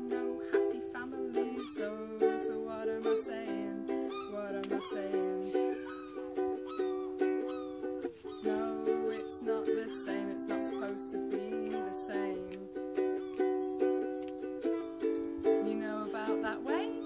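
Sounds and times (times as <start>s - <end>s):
ukulele strummed: 0.0s - 17.0s.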